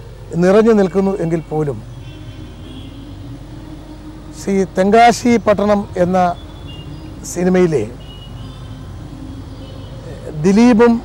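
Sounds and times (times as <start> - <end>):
low background rumble and hum: 0.0 - 11.0.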